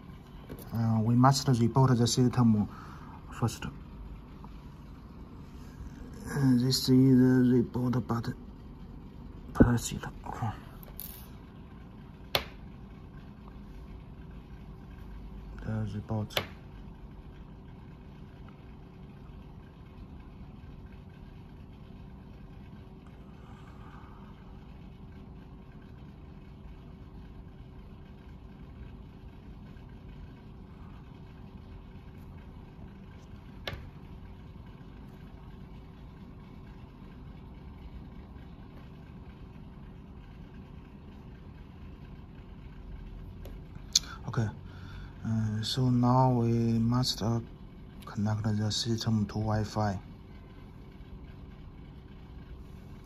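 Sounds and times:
faint steady hum: 0:00.0 - 0:53.0.

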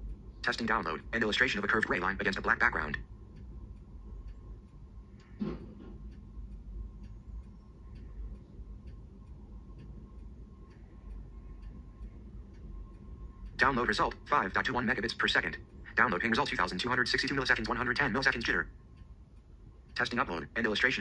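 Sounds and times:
phone ticking: 0:00.0 - 0:21.0.

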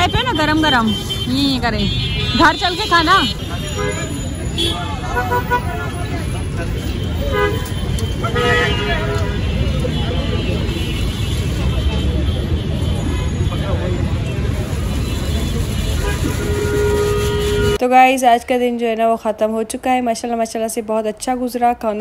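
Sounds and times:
car horns tooting: 0:00.0 - 0:17.8
crowd voices: 0:00.0 - 0:17.8
rumble of passing vehicles: 0:00.0 - 0:22.0.

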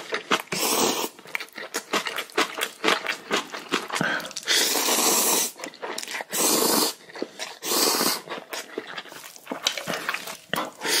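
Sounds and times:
chewing: 0:00.0 - 0:11.0
noodles being slurped: 0:00.0 - 0:11.0.

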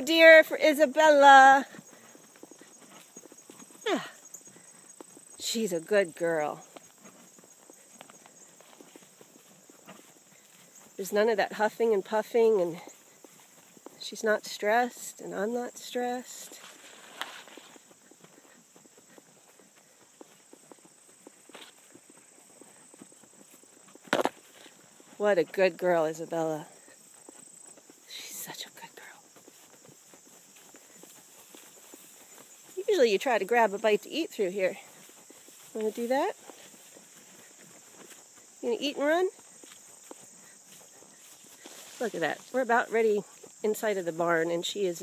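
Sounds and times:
hooves walking on grass: 0:00.0 - 0:45.0
horse hoofbeats on dirt: 0:00.0 - 0:45.0
insects chirping: 0:00.0 - 0:45.0.

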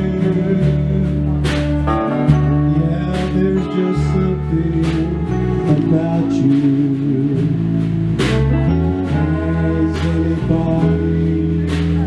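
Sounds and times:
electric guitar instrumental music: 0:00.0 - 0:12.0.

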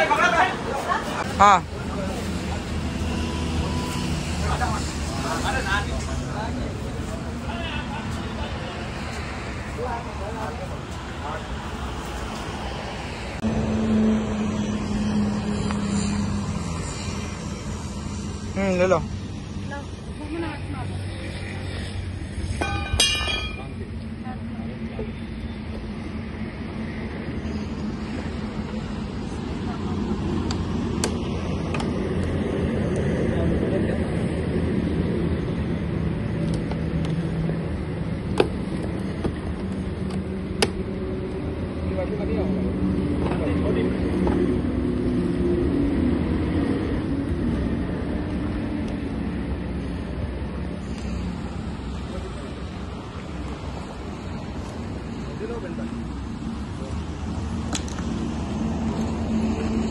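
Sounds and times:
constant low hum: 0:00.0 - 0:59.9.

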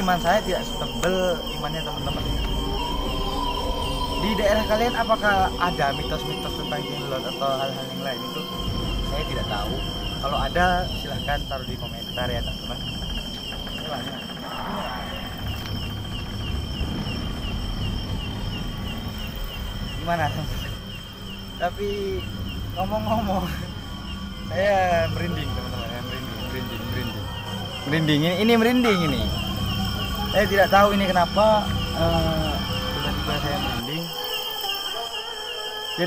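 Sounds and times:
insect chirping trill: 0:00.0 - 0:36.0
low rumble: 0:08.4 - 0:27.9.

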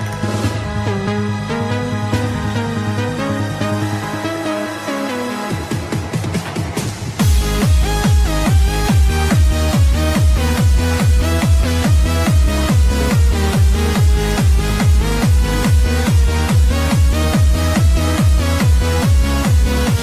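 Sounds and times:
bright synth melody: 0:00.0 - 0:06.2, 0:07.2 - 0:20.0
techno kick drum: 0:05.5 - 0:20.0.

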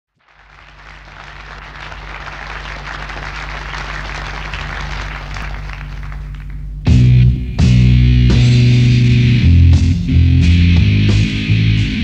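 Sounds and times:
audience applauding: 0:00.1 - 0:06.8
steady low hum: 0:00.2 - 0:12.0.

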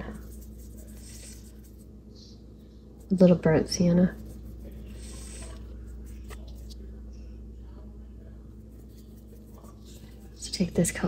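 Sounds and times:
paintbrush rubbing on palette: 0:00.0 - 0:02.0, 0:02.9 - 0:06.8, 0:08.6 - 0:11.0
low steady hum: 0:00.0 - 0:11.0.

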